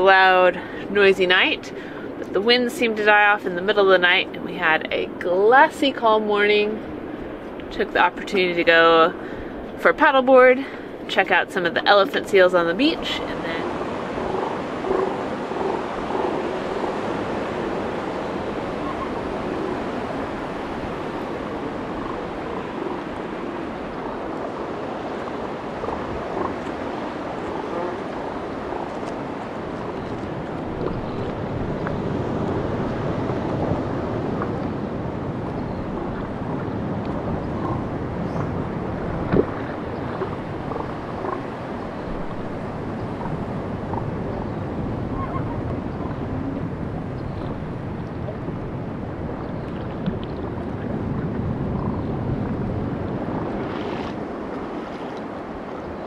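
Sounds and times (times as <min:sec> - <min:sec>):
wind on microphone: 0:00.0 - 0:56.0
water lapping against a paddleboard: 0:11.9 - 0:56.0.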